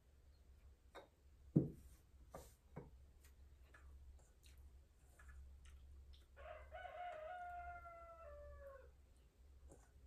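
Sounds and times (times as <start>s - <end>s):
rooster crowing: 6.4s - 9.0s.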